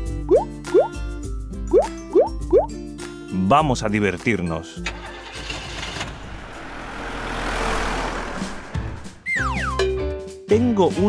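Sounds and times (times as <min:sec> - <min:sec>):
rushing vehicle engine: 0:04.8 - 0:09.4.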